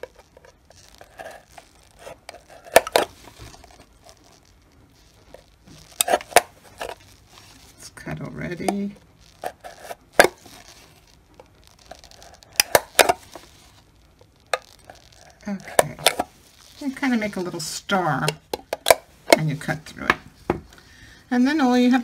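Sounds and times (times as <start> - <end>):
plastic clicking and cracking: 0.0 - 7.2, 8.4 - 16.8, 18.2 - 20.8
knife cutting plastic cup: 1.0 - 3.2, 12.1 - 13.2.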